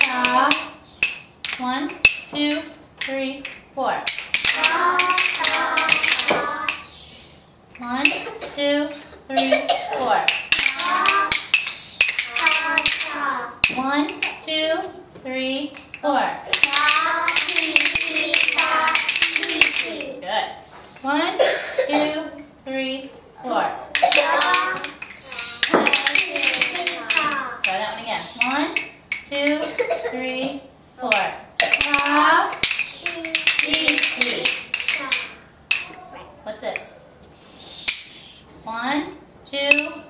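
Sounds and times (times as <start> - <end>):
wooden rhythm sticks clicking: 0.0 - 9.0, 10.0 - 20.3, 23.5 - 29.9, 31.0 - 38.4, 39.5 - 40.0
children chanting: 4.6 - 7.0, 12.3 - 13.6, 16.6 - 20.2, 24.0 - 27.6.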